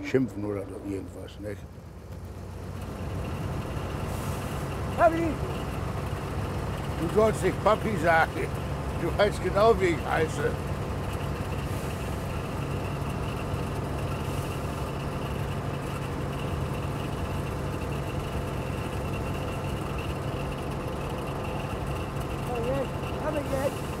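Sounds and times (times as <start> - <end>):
car engine humming: 0.0 - 24.0.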